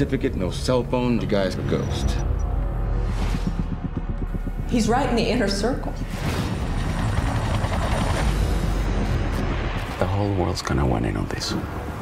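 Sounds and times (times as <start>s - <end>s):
helicopter rumble: 1.9s - 9.2s.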